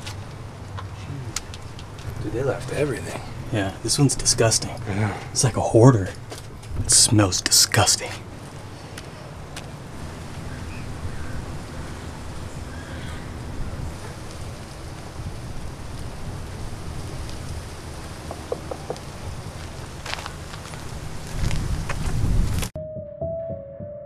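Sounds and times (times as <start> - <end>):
wind rumbling on microphone: 6.2 - 7.3, 8.3 - 22.8.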